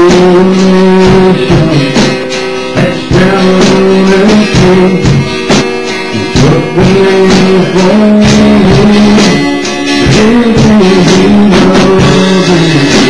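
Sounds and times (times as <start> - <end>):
band playing: 0.0 - 13.0
drum beats: 0.0 - 13.0
man singing: 0.0 - 13.0.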